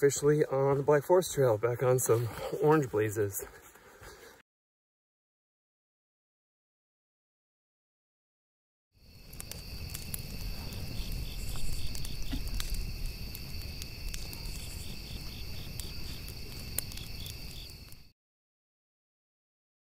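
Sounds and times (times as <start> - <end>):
crickets trilling: 9.0 - 18.1.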